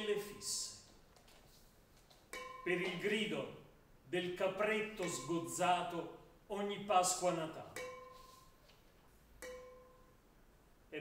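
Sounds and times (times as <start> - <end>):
man speaking: 0.0 - 0.8, 2.6 - 7.8
pitched percussion note ringing: 2.3 - 3.3, 5.0 - 5.6, 7.7 - 8.6, 9.4 - 10.2.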